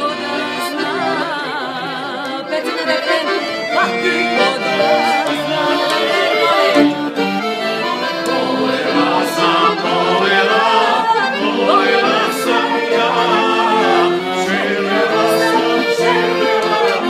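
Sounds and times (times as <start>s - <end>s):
woman singing: 0.0s - 8.1s, 10.6s - 12.4s, 14.9s - 17.0s
piano accordion playing: 0.0s - 17.0s
man singing: 3.8s - 17.0s.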